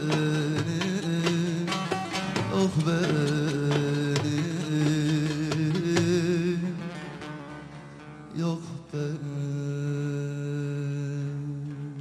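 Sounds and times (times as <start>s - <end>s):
long-necked lute accompaniment: 0.0s - 12.0s
man singing folk song: 0.0s - 12.0s.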